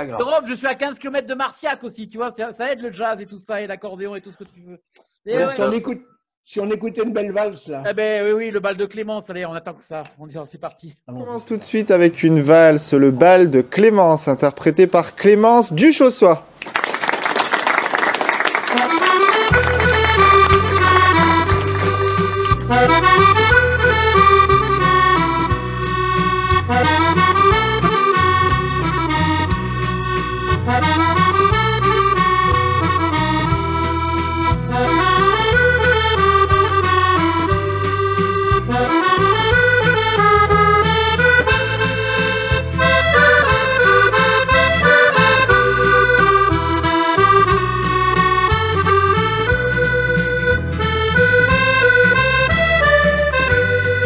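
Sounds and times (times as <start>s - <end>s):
band accompaniment: 18.6s - 54.0s
accordion playing a waltz: 18.7s - 54.0s
bass line: 18.9s - 54.0s.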